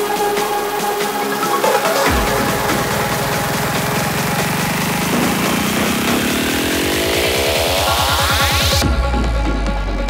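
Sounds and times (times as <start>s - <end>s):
fast pulsing bass: 0.0s - 10.0s
psytrance music: 0.0s - 10.0s
buzzing synth riser: 0.6s - 8.9s.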